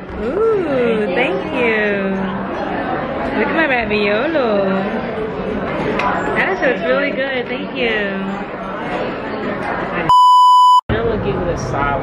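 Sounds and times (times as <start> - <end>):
restaurant chatter: 0.0 - 10.2, 10.9 - 12.0
electronic bleep tone: 10.1 - 10.8.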